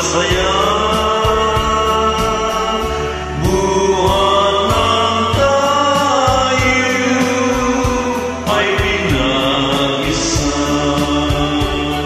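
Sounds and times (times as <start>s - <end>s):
karaoke backing track: 0.0s - 12.0s
man singing a ballad: 0.0s - 12.0s.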